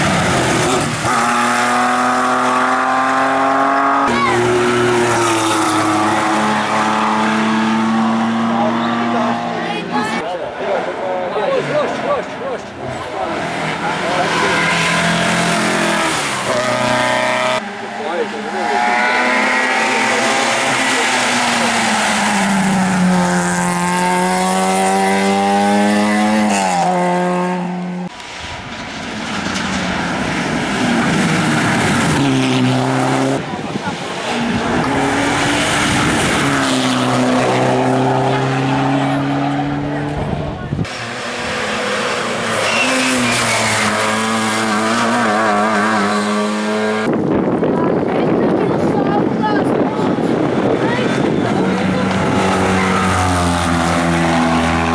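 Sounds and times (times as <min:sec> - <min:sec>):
race car engines accelerating: 0:00.0 - 0:54.9.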